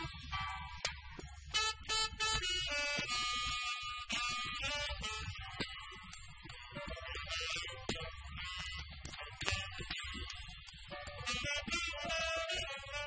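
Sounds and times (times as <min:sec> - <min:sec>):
jazz quartet playing: 0:11.2 - 0:13.0.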